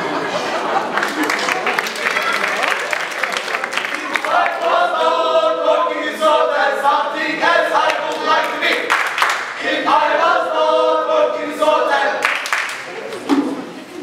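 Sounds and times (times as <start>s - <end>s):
group singing in unison: 4.0s - 12.6s.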